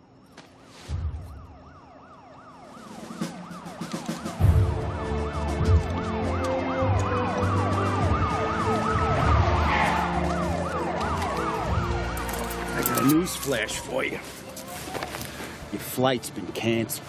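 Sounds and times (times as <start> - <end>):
police siren wail: 1.1 - 15.3
police siren yelp: 1.2 - 15.2.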